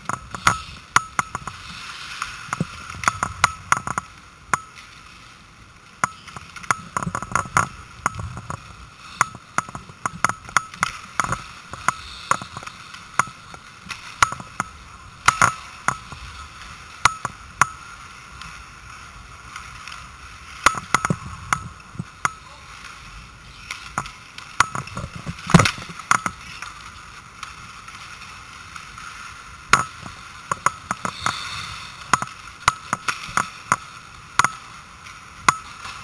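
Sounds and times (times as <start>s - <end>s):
hockey sticks clacking on puck: 0.0s - 5.1s, 6.0s - 18.5s, 20.6s - 23.0s, 23.6s - 27.6s, 29.7s - 34.7s
rink hiss: 11.6s - 13.1s, 30.9s - 32.7s.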